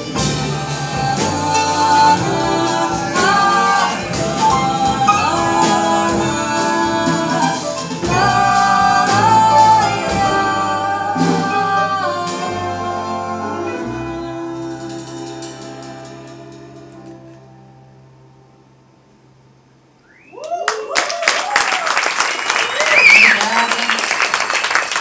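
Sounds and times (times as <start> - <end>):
drum kit with cymbals: 0.0 - 17.3
double bass: 0.0 - 19.9
piano: 0.0 - 25.0.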